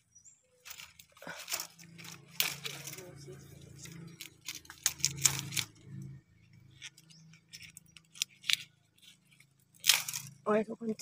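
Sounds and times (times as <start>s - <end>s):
dry bamboo leaves crackling: 0.5s - 11.0s.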